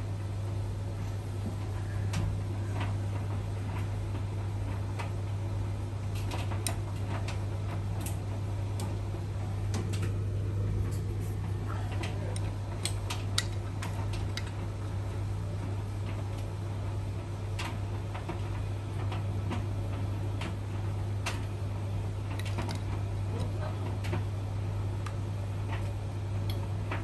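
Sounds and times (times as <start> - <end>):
washing machine humming: 0.0 - 27.0.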